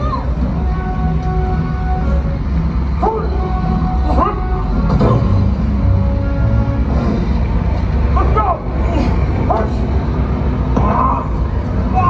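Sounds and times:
aircraft engine rumble: 0.0s - 12.0s.

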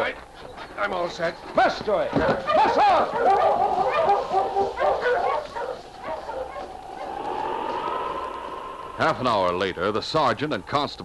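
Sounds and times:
sled dogs barking and yelping: 1.4s - 9.0s
rising held tone: 5.8s - 10.2s.

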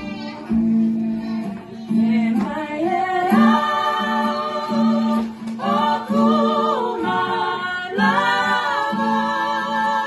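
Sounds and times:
gospel song playing: 0.0s - 10.0s
women singing along: 0.0s - 10.0s.

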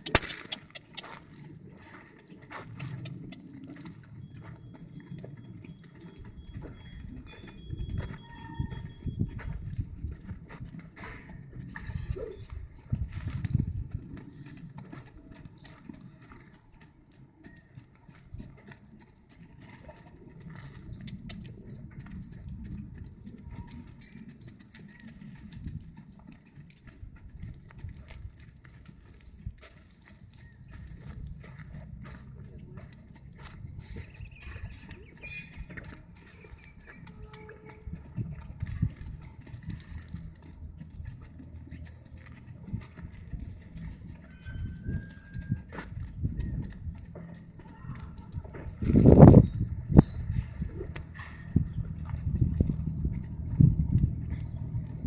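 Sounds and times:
hoofbeats on sand: 0.0s - 55.0s.

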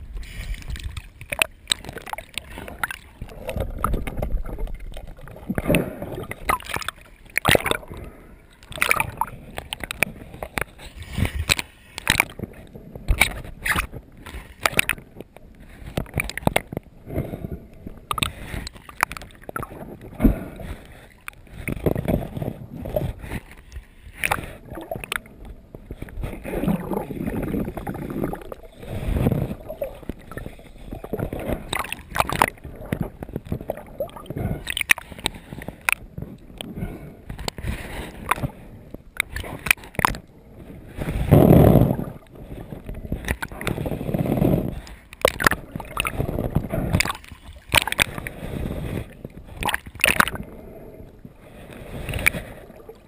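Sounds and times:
water splashes: 0.0s - 50.8s
muffled underwater movement: 0.0s - 53.0s
sea water sloshing and gurgling: 0.0s - 53.0s.

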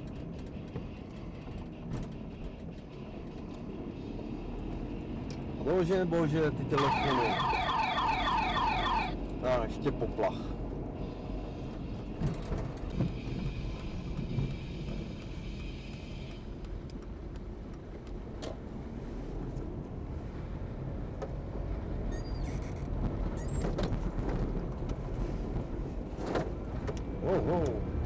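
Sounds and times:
car engine and road rumble: 0.0s - 28.0s.

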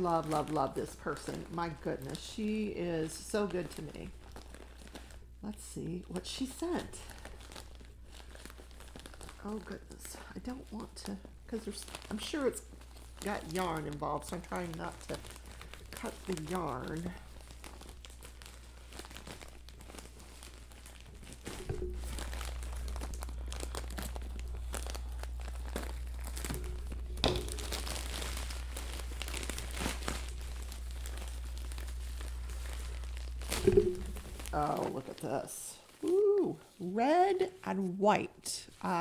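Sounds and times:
plastic bag crinkling and tearing: 0.0s - 37.6s.

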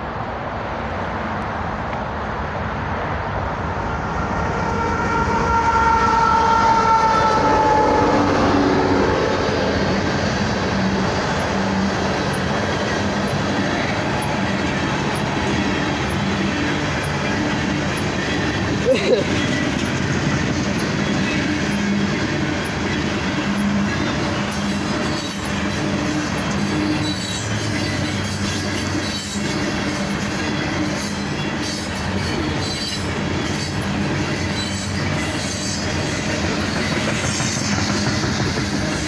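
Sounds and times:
locomotive engines: 0.1s - 39.0s
train horn: 4.2s - 9.8s
train cars rolling and clattering: 6.7s - 39.0s.

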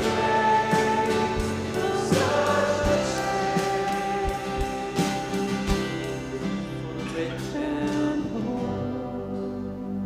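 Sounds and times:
drum hits: 0.0s - 6.7s
worship band playing: 0.0s - 10.0s.

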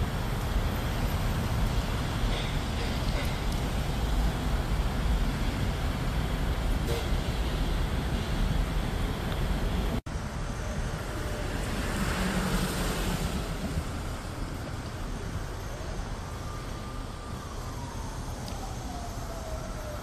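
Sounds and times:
road traffic rumble: 0.0s - 20.0s
vehicle passing: 10.6s - 14.5s.

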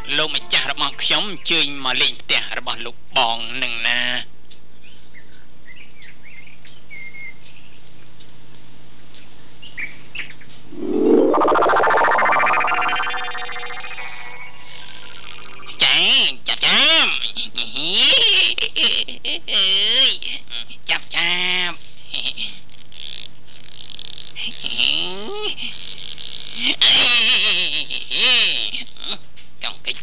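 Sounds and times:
speech: 0.0s - 4.3s, 15.8s - 18.6s, 19.3s - 21.8s, 28.2s - 30.0s
upward sweeping tone: 10.7s - 15.8s.

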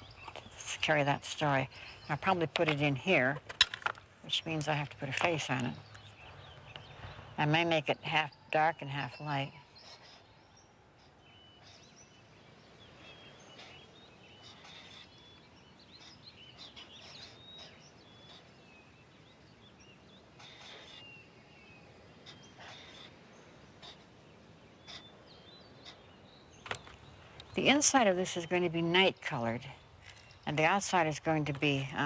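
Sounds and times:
small birds chirping: 0.0s - 32.0s.

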